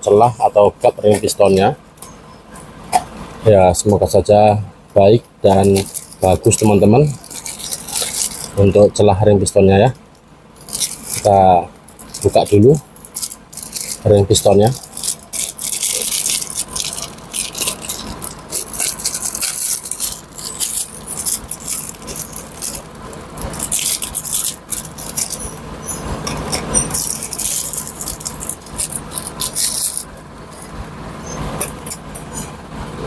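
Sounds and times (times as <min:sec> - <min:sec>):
plastic bag crinkling: 0:05.5 - 0:08.8, 0:10.5 - 0:30.8.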